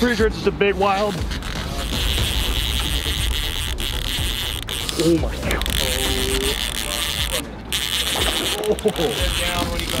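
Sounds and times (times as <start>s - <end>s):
high-pitched whir: 1.7s - 10.0s.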